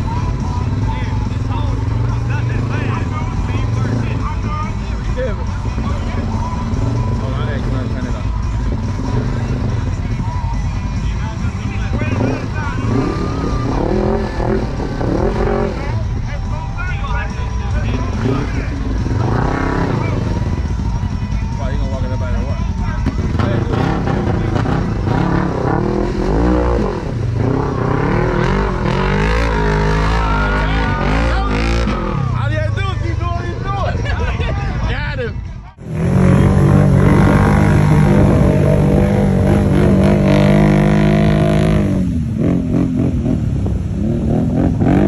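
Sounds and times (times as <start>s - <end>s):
utv engine revving hard: 0.0s - 4.5s, 5.2s - 10.0s, 11.8s - 16.1s, 17.8s - 20.8s, 23.0s - 32.5s, 35.8s - 45.0s
vehicle churning through mud: 0.0s - 10.4s, 11.0s - 16.4s, 17.2s - 21.2s, 22.3s - 34.0s, 35.8s - 45.0s
voices: 0.0s - 43.0s.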